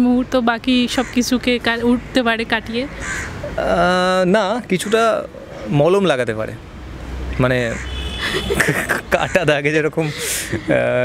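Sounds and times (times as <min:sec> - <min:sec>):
man speaking: 0:03.5 - 0:06.6, 0:08.7 - 0:11.0.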